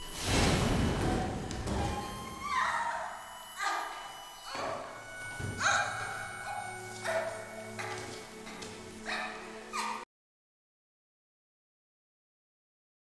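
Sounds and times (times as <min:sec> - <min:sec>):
dramatic film score accents: 0:00.0 - 0:10.0.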